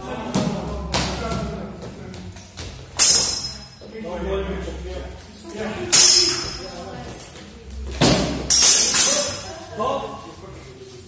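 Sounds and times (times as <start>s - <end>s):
steel swords clashing: 3.0s - 3.8s, 5.9s - 6.6s, 8.4s - 9.5s.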